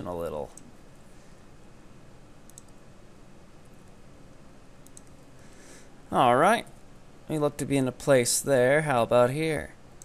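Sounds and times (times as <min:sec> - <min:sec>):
low steady hiss: 0:00.0 - 0:10.0
keyboard and mouse clicks: 0:02.4 - 0:02.8, 0:04.8 - 0:05.2.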